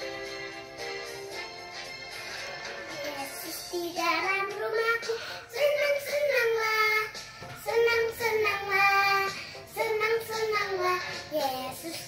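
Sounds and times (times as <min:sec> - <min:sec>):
girl singing: 0:02.9 - 0:12.0.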